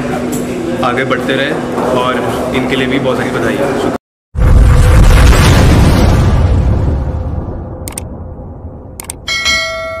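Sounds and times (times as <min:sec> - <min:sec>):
low boom rumble: 0:04.4 - 0:09.0.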